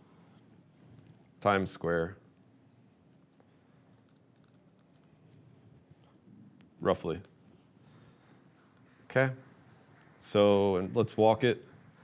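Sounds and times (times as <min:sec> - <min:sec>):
typing on laptop keyboard: 0:02.7 - 0:05.3.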